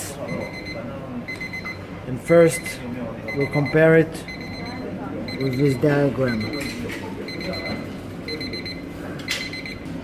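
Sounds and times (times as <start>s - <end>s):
timer alarm high-pitched pips: 0.3s - 6.7s.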